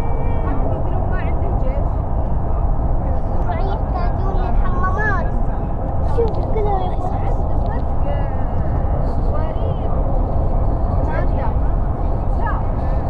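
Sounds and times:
vehicle road and engine rumble: 0:00.0 - 0:13.0.

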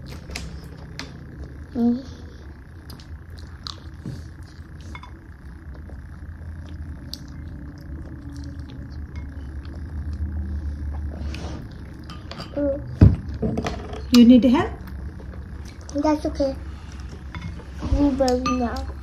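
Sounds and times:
steady low hum: 0:00.0 - 0:19.0
chewing and mouth noises: 0:02.8 - 0:11.1.

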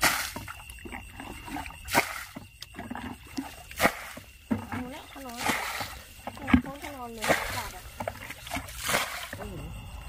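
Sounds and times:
muddy water splashing: 0:00.0 - 0:10.0.

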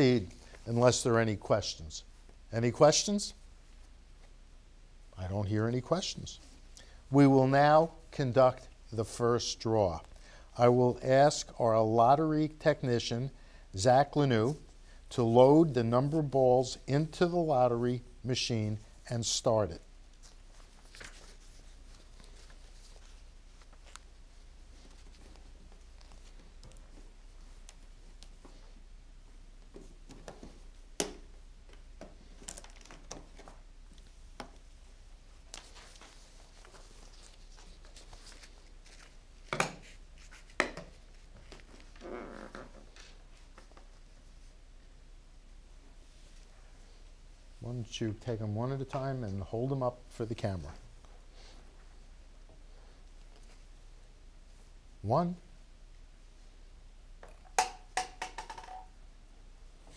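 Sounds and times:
ball bouncing in plastic tube: 0:57.2 - 0:58.9.

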